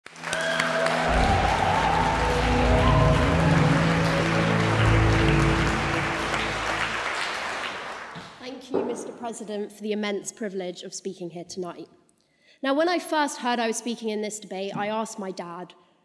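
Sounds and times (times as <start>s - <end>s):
applause: 0.0s - 8.4s
intro music with held chords: 0.8s - 7.7s
deep bass: 1.1s - 6.8s.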